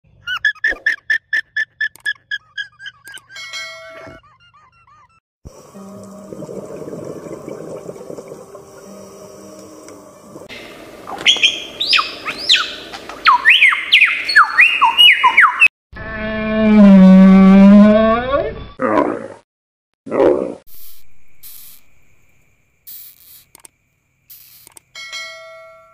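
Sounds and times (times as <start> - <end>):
murky steady hum: 5.5 - 13.2
loud whistled bird song: 10.5 - 15.7.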